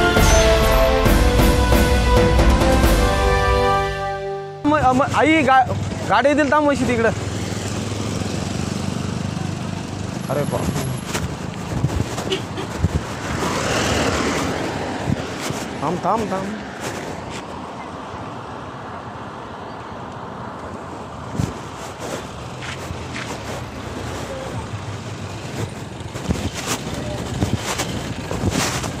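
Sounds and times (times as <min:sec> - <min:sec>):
road and wind noise: 0:00.0 - 0:29.0
vehicle engine humming: 0:00.0 - 0:29.0.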